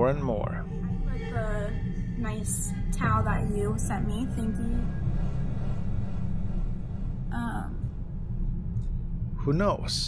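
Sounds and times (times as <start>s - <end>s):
low droning music: 0.0s - 10.0s.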